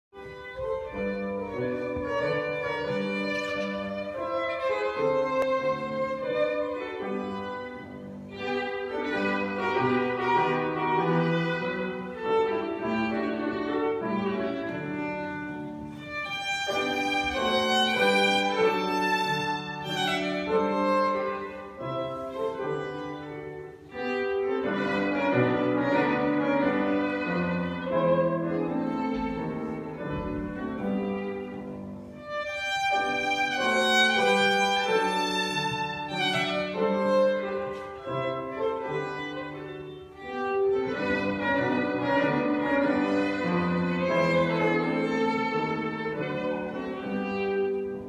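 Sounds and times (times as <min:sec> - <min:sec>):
piano accompaniment: 0:00.1 - 0:48.0
violin melody: 0:00.1 - 0:48.0.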